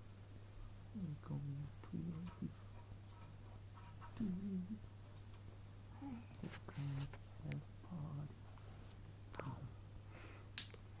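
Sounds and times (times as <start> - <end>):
steady low hum: 0.0 - 11.0
person humming mm-hmm: 4.2 - 4.8.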